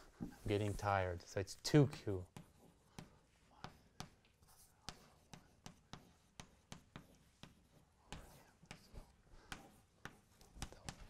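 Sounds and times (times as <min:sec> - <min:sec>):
faint chalk scratch: 0:00.0 - 0:11.0
chalk tapping on blackboard: 0:01.9 - 0:11.0.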